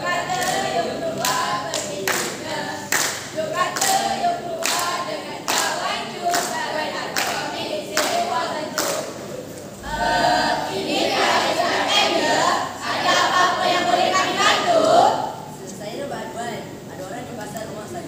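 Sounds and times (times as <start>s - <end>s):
young voices singing together: 0.0s - 15.6s
rhythmic claps or stamps: 0.2s - 9.2s.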